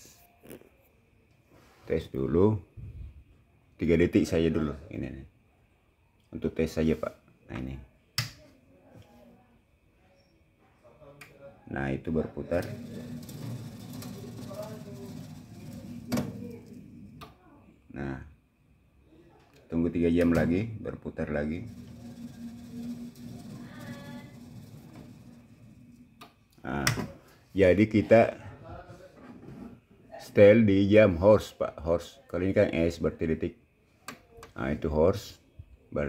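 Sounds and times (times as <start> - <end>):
small gear motor humming: 21.6 - 26.0.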